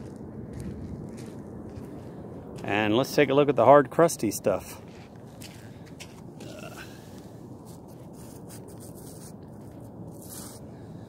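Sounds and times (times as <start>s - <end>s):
steady low noise: 0.0s - 11.0s
scraping hard salt crust: 7.6s - 10.6s.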